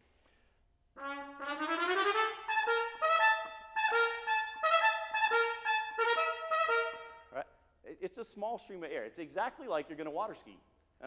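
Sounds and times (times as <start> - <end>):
solo trumpet playing: 1.0 - 7.4.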